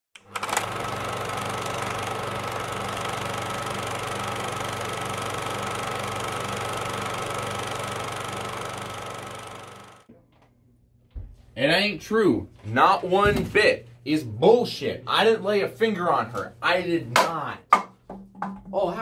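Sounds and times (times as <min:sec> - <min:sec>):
small machine whirring: 0:00.2 - 0:10.1.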